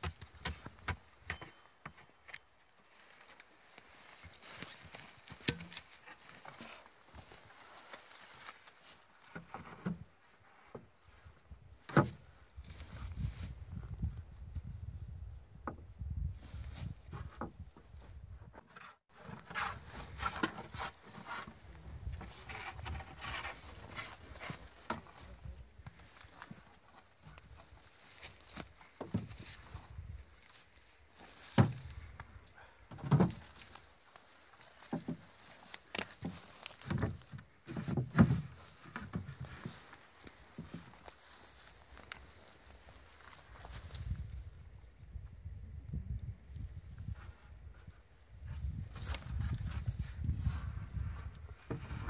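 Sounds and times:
wind buffeting microphone: 12.5 - 18.5, 43.7 - 52.0.

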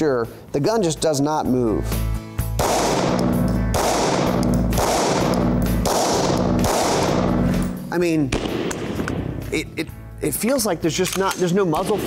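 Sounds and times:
background music: 0.0 - 12.0
pistol shots echoing indoors: 2.5 - 9.4.

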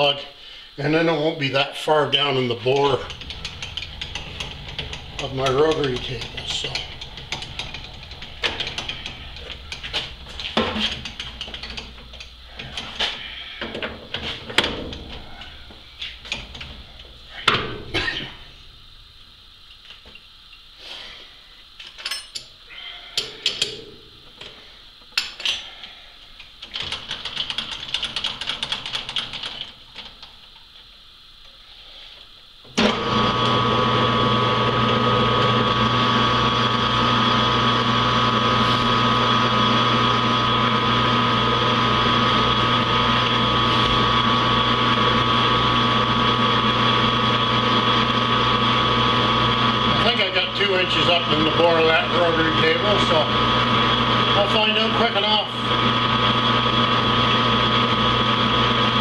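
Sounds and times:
lathe motor humming and whining: 2.0 - 19.3, 32.8 - 59.0
tools clicking and knocking on metal: 2.7 - 13.0.

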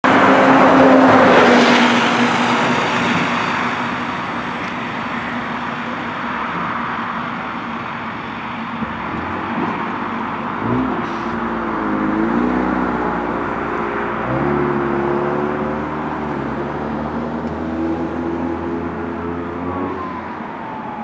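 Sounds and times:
vehicle passing by: 0.0 - 4.7, 9.1 - 21.0
steady traffic noise: 0.0 - 21.0.

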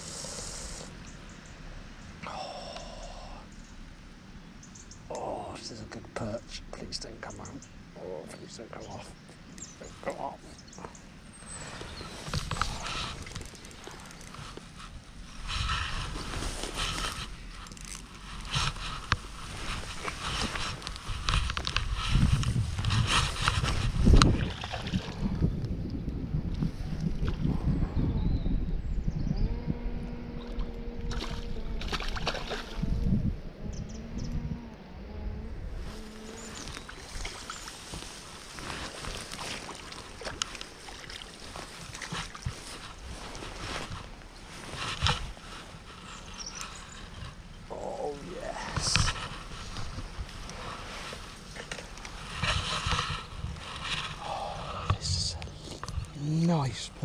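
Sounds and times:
low steady hum: 0.0 - 57.0
grass rustling: 9.1 - 24.4, 35.6 - 57.0
water splashing: 36.8 - 43.0.

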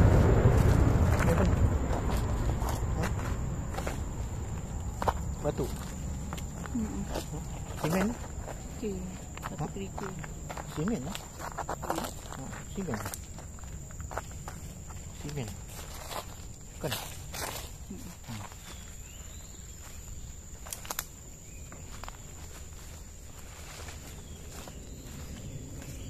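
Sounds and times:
footsteps crunching on leaves: 0.0 - 26.0.

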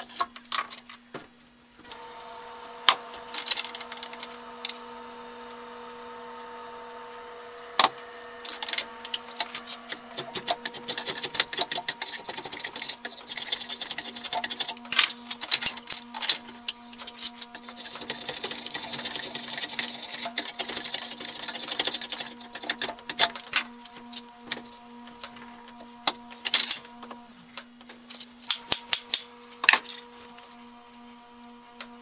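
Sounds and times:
steady low hum: 1.8 - 27.8
hand tool scraping wood: 6.4 - 26.8.

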